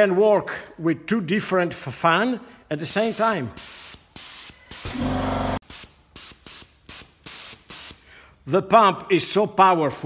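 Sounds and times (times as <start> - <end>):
spray gun hissing bursts: 2.8 - 8.0.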